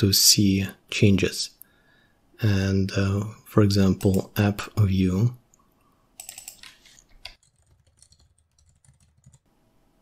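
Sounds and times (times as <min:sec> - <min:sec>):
typing on computer keyboard: 0:06.2 - 0:09.5.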